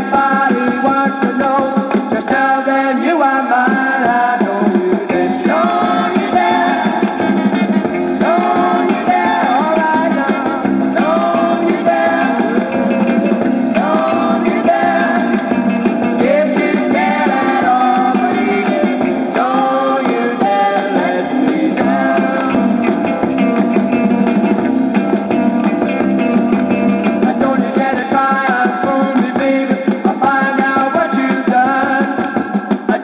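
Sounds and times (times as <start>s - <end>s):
band with singing and guitar: 0.0s - 33.0s.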